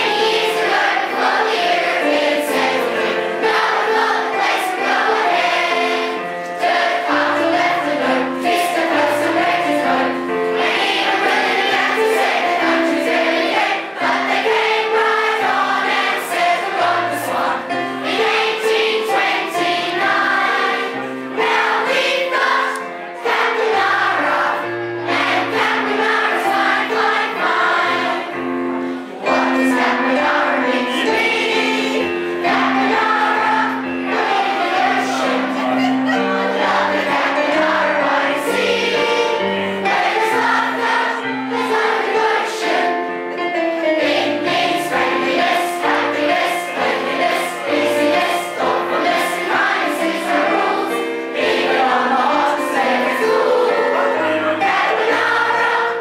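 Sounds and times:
choir and audience singing: 0:00.0 - 0:56.0.

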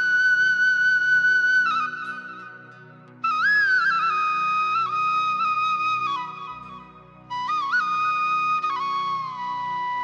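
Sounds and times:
bamboo flute melody: 0:00.0 - 0:10.0.

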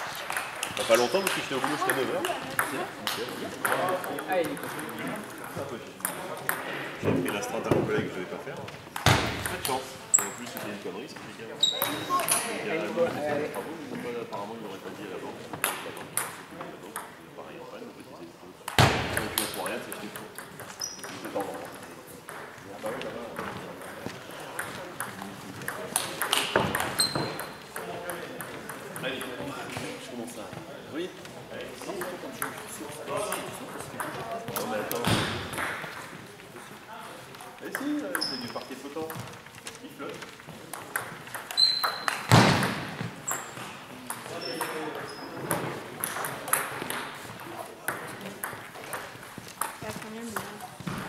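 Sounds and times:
brief high squeak: 0:27.0 - 0:27.4
table tennis ball clicking: 0:40.7 - 0:42.2.

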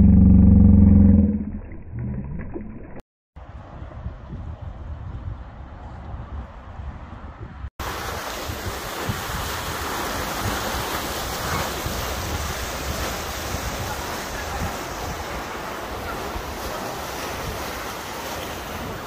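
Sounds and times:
wind buffeting microphone: 0:03.4 - 0:19.0.

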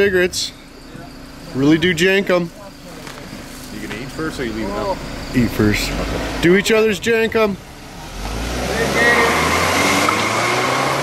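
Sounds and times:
car accelerating hard: 0:04.4 - 0:11.0.

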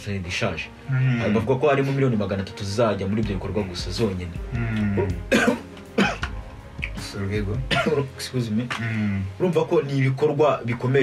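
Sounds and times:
quiet background music: 0:00.0 - 0:11.0
man coughing: 0:04.6 - 0:06.3, 0:07.7 - 0:08.1.

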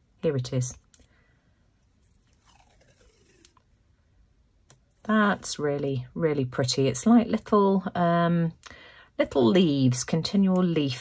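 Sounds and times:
tape peeling crackle: 0:02.0 - 0:03.7.

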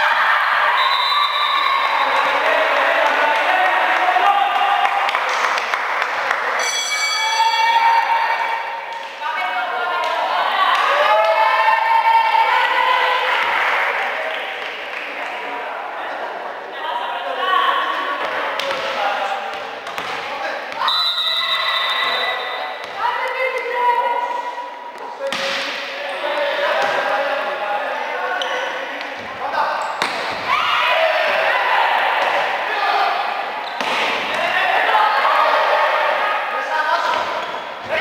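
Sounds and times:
people shouting: 0:07.1 - 0:13.6, 0:30.0 - 0:37.2
volleyball slaps: 0:18.2 - 0:20.8, 0:22.8 - 0:23.7, 0:25.0 - 0:26.0, 0:29.0 - 0:30.6, 0:33.7 - 0:34.6.

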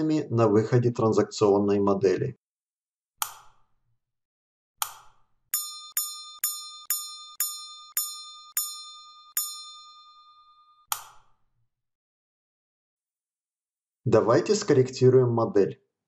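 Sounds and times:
sharp click: 0:03.2 - 0:03.6, 0:04.8 - 0:05.2, 0:10.9 - 0:11.3
bright bell-like dings: 0:05.6 - 0:10.9.

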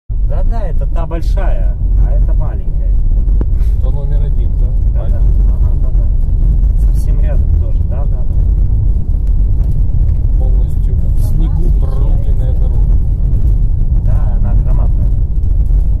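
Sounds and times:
car engine and tyre rumble: 0:00.1 - 0:16.0
faint talking: 0:10.4 - 0:13.0.

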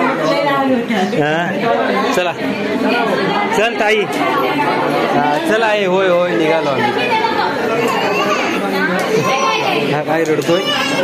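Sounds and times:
people talking over one another: 0:00.0 - 0:11.0
small child's voice: 0:10.5 - 0:11.0.

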